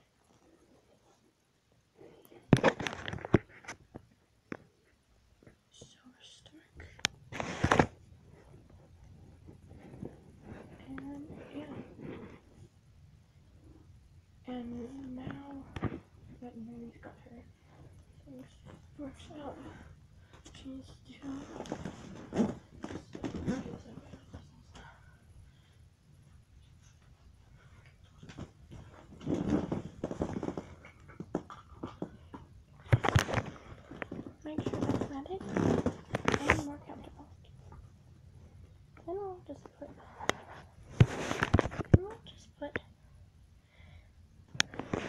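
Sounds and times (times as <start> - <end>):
handling rustling and knocks: 7.2 - 12.9, 14.6 - 25.0, 26.6 - 38.0.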